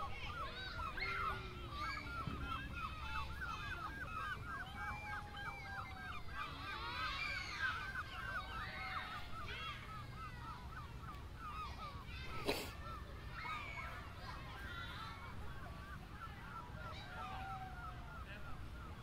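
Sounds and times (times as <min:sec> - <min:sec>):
birds calling: 0:00.0 - 0:19.0.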